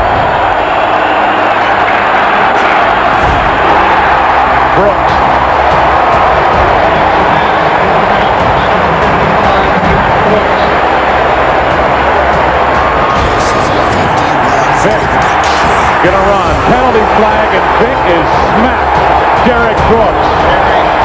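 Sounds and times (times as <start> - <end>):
loud music with low notes: 0.0 - 21.0
stadium crowd noise: 0.0 - 21.0
sports broadcast commentary: 0.9 - 21.0.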